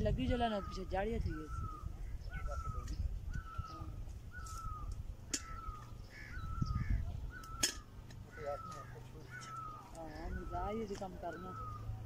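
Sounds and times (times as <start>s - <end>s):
bird calling: 0.0s - 12.0s.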